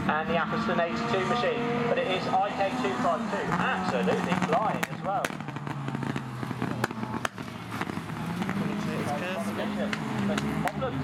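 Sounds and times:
racing car engines: 0.0 - 11.0
sharp cracks: 4.2 - 8.6.

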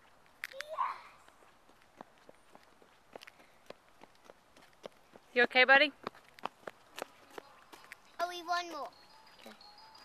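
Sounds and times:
light taps and clicks on asphalt: 0.0 - 9.5.

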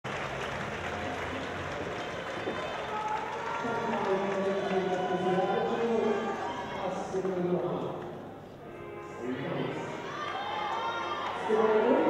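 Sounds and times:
audience applause: 0.0 - 7.6, 10.1 - 12.0
crowd noise: 0.0 - 12.0.

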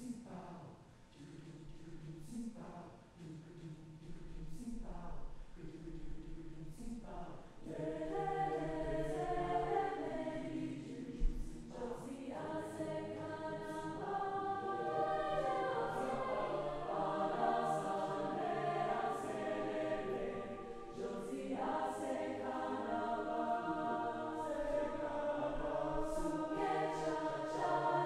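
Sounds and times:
mixed choir singing: 6.7 - 28.0.

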